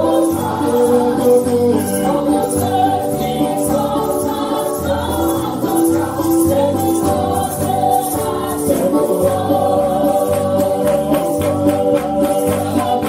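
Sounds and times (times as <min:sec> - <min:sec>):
group of voices singing: 0:00.0 - 0:13.0
rhythmic beat: 0:00.0 - 0:13.0.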